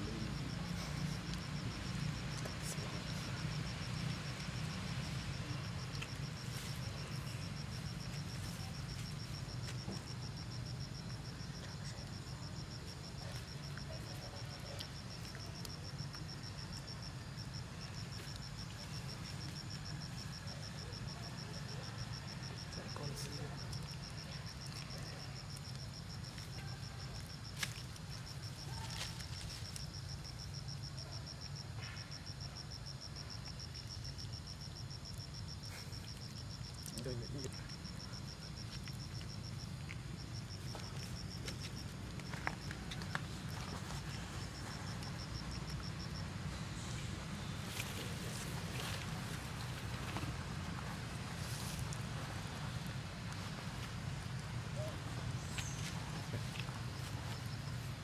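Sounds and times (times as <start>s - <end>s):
insects trilling: 0.0s - 58.0s.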